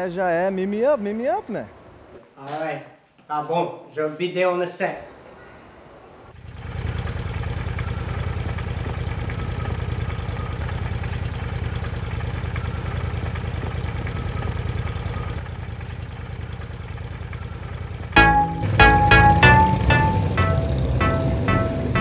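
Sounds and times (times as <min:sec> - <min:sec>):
vehicle engine idling: 0:06.4 - 0:22.0.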